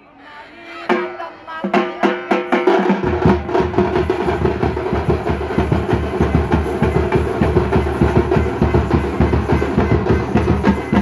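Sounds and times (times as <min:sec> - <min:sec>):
frame drums beaten with sticks: 0:00.9 - 0:11.0.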